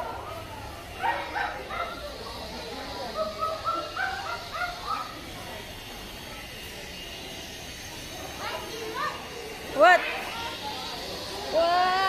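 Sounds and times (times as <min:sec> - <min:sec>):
background murmur: 0:00.0 - 0:12.0.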